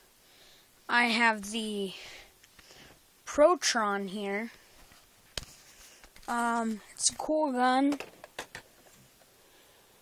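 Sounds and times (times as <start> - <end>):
plastic toy clicks and knocks: 7.9 - 8.7.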